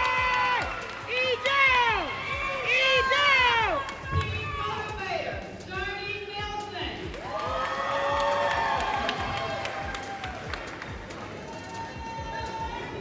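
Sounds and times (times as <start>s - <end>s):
scattered clapping: 0.0s - 4.7s, 6.9s - 12.6s
high-pitched shouts and whoops: 0.0s - 5.0s, 7.2s - 10.5s, 11.3s - 13.0s
crowd noise: 8.9s - 13.0s.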